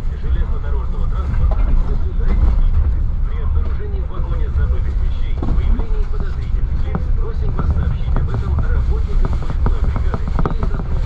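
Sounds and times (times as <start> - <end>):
train rumbling at speed: 0.0 - 11.0.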